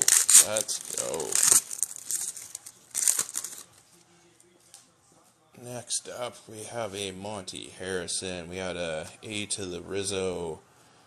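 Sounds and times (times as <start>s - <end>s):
foil wrapper tearing and crinkling: 0.0s - 3.8s.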